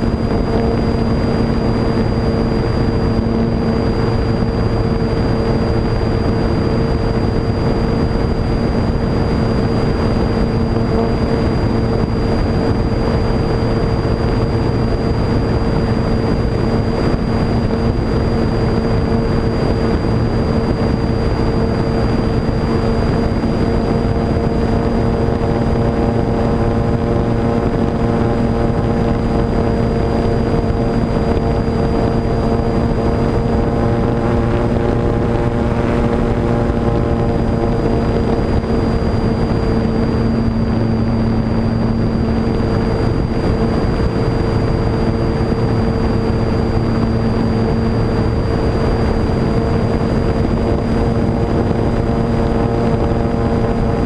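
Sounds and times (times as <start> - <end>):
electric motor and propeller running: 0.0 - 54.0.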